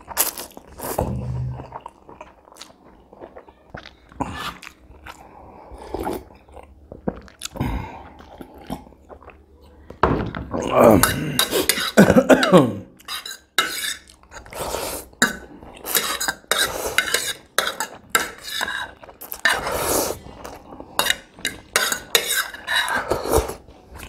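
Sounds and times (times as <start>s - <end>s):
fork scraping on plate: 13.0s - 20.2s, 21.0s - 23.6s
noodles being slurped: 13.0s - 23.7s.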